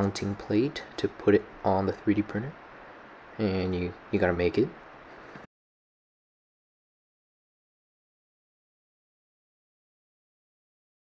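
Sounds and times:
faint background hiss: 0.0s - 5.5s.

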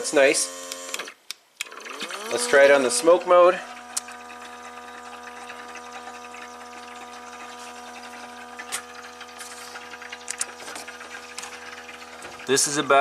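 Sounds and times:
electric air pump humming: 0.0s - 1.1s, 1.8s - 13.0s.

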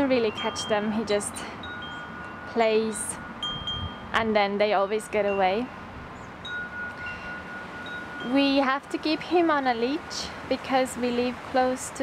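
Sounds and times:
wind chimes ringing: 0.0s - 10.4s.

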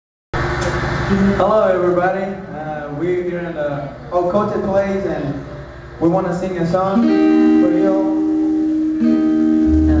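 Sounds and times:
acoustic guitar chords: 7.0s - 10.0s
deep low note: 9.7s - 10.0s.

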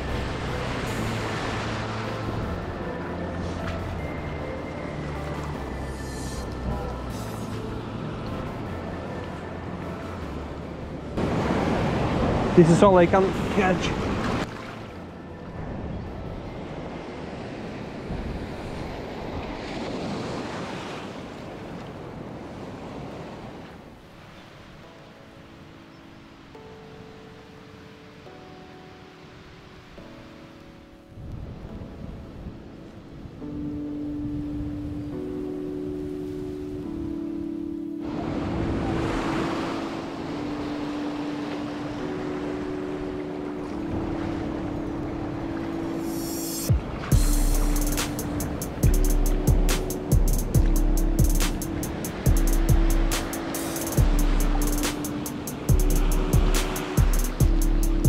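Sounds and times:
waves washing up the shore: 0.0s - 10.4s, 11.2s - 37.2s, 37.8s - 58.0s
synth background music: 0.0s - 20.0s, 23.8s - 58.0s.

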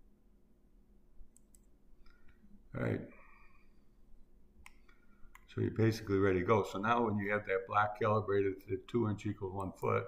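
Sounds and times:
faint computer mouse clicks: 1.3s - 2.4s, 4.6s - 5.5s.

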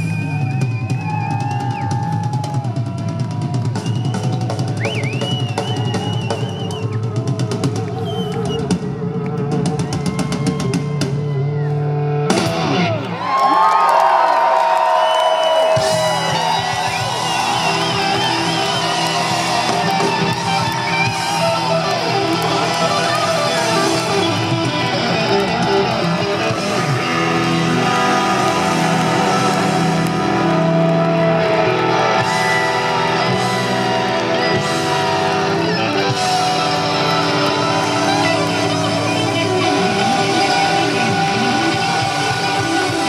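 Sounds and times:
crowd whooping and cheering: 0.0s - 43.0s
live rock band with electric guitars: 0.0s - 43.0s.

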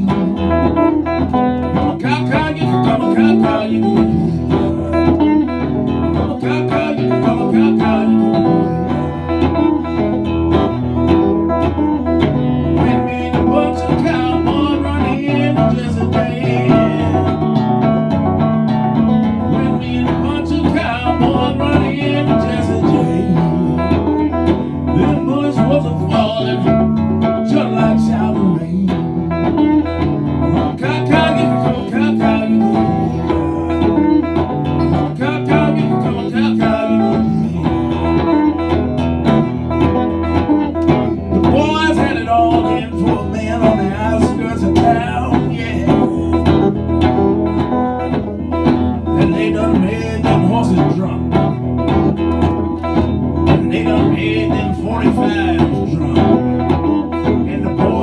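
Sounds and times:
acoustic guitar picking: 0.0s - 58.0s.

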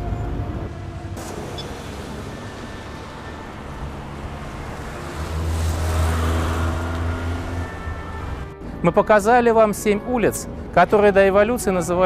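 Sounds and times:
vehicle engine passing close: 0.0s - 8.6s
cars going by: 0.0s - 8.9s.

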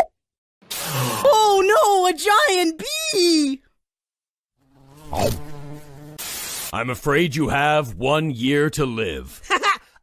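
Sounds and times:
cartoon bee buzzing: 4.6s - 6.7s.

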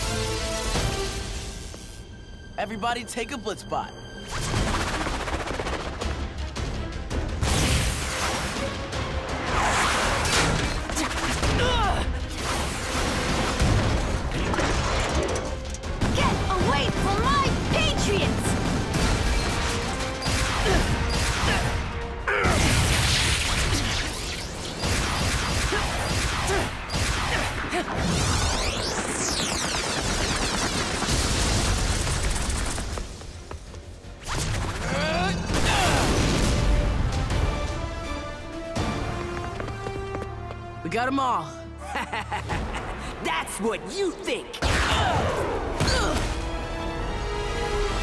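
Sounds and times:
action music score: 0.0s - 48.0s.

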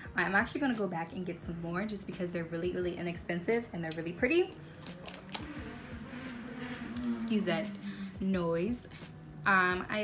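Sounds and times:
plastic cosmetics clicking: 4.8s - 5.5s.

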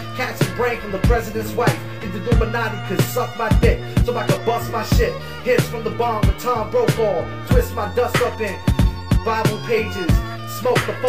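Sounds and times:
hip-hop beat with kick drum: 0.0s - 11.0s
rapped vocal: 0.0s - 11.0s.

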